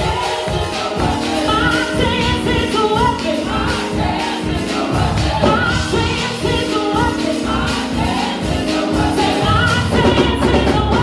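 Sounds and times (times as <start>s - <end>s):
group singing gospel music: 0.0s - 11.0s.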